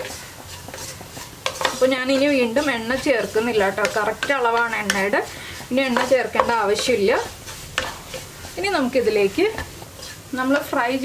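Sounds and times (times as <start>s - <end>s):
faint sizzling in oil: 0.0s - 11.0s
spatula scraping a pan: 0.0s - 11.0s
woman speaking: 1.7s - 7.3s, 8.6s - 9.7s, 10.3s - 11.0s
spatula knocking against pan: 5.8s - 7.0s.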